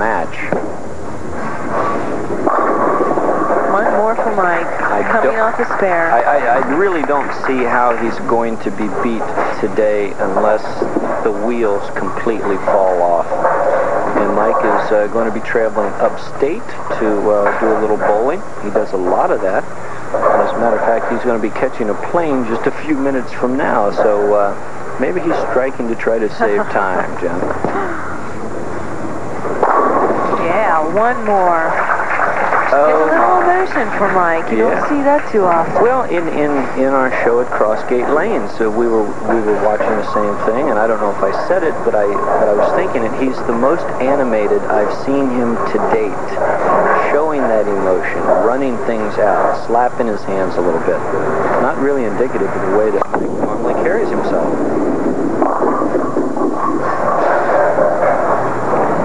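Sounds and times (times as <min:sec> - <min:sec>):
bowling pins crashing: 0:00.0 - 0:16.0, 0:27.2 - 0:36.9
bowling ball rolling on wooden lane: 0:00.0 - 0:16.1, 0:28.5 - 0:38.7, 0:53.0 - 0:59.0.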